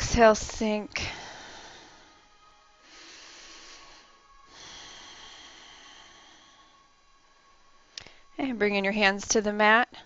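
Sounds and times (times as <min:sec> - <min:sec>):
faint soft background music: 0:00.0 - 0:10.0
person breathing through the nose: 0:02.8 - 0:06.8.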